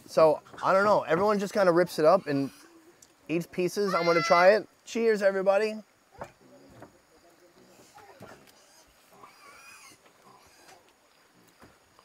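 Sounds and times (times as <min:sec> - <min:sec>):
pig squealing: 0:02.0 - 0:02.9, 0:03.8 - 0:04.6, 0:07.7 - 0:10.8.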